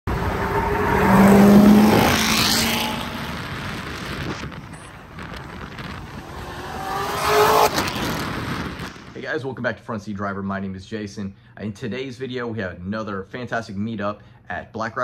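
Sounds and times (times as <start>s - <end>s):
car engine accelerating past: 0.1s - 8.9s
engine revving: 0.1s - 9.2s.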